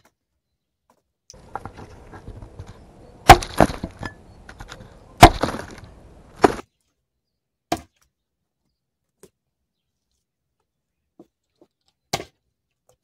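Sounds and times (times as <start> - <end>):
hatchet chopping wood: 3.2 - 6.6.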